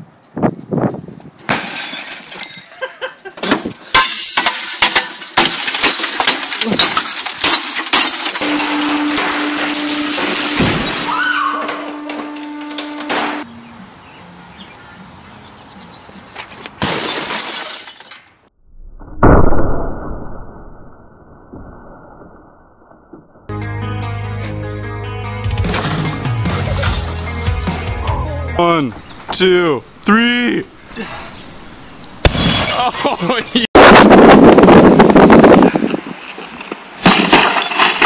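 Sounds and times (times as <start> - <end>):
shattering glass: 1.5 - 2.9, 3.9 - 11.3, 16.8 - 18.5, 37.0 - 38.0
televisions being smashed: 3.4 - 13.4, 37.0 - 38.0
loud deep bang: 19.0 - 20.7.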